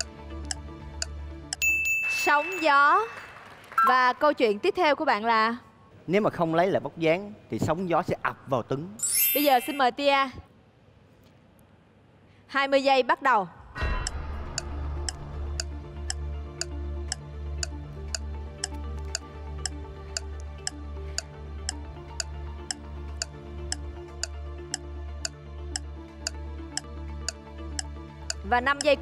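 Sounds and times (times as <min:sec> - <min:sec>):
clock-like ticking: 0:00.0 - 0:01.6, 0:13.9 - 0:21.3, 0:25.7 - 0:26.9, 0:27.7 - 0:29.0.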